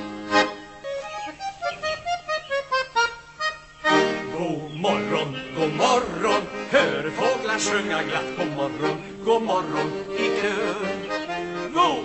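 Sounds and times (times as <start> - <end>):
button accordion playing: 0.0 - 12.0.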